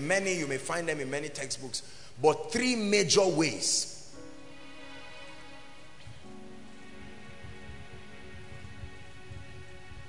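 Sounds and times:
soft held chords music: 2.5 - 10.0.

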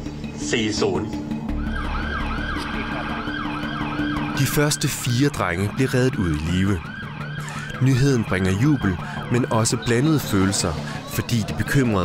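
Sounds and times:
emergency siren falling sweeps: 1.5 - 10.8.

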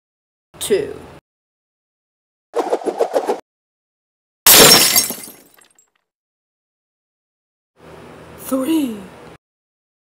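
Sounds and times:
shattering crash: 4.5 - 5.6.

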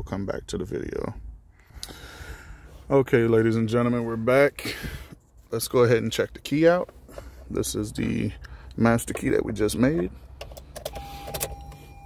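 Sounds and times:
electronic warning tone: 10.9 - 12.0.

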